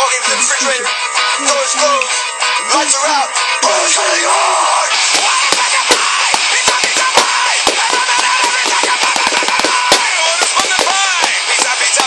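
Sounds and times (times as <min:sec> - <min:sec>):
song playing in background: 0:00.0 - 0:12.0
drumsticks hitting plastic cases: 0:05.2 - 0:12.0.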